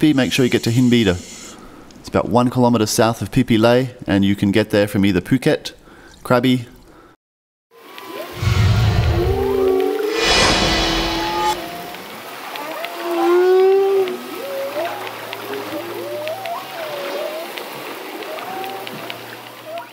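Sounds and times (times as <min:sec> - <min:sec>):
whale calls underwater: 0:07.8 - 0:10.3, 0:11.2 - 0:19.9
rush of noise: 0:08.3 - 0:12.0
low underwater rumble: 0:08.4 - 0:11.9.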